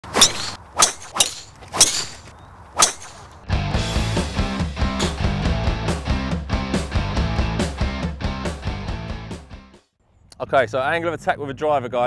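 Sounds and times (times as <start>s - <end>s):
guitar music with steady beat: 3.5s - 9.7s.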